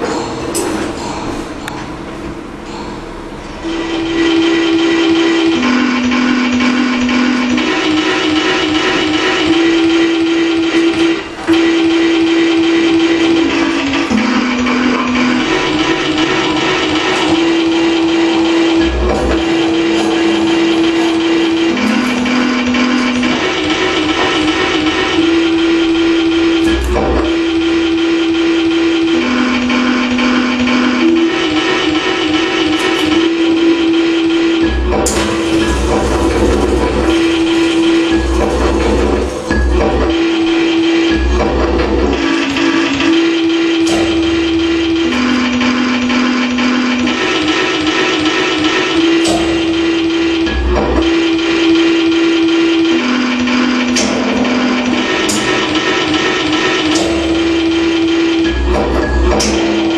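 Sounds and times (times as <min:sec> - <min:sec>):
dense electronic buzzing: 0:00.0 - 0:59.9
low drone note: 0:00.0 - 0:59.9
wavering electronic humming tone: 0:00.0 - 0:59.9.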